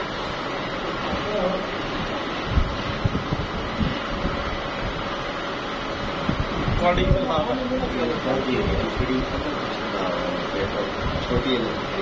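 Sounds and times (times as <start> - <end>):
laminating machine humming: 0.0 - 12.0.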